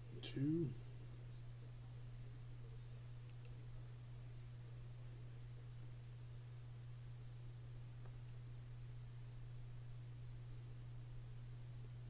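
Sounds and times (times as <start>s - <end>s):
faint low hum: 0.0s - 12.0s
computer mouse clicks: 3.3s - 3.6s.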